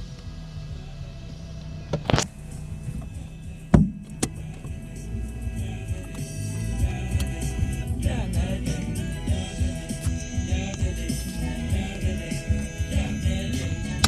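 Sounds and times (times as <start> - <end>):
car radio music: 0.0 - 14.0
road and engine rumble: 0.0 - 14.0
sharp knocks: 3.7 - 4.3.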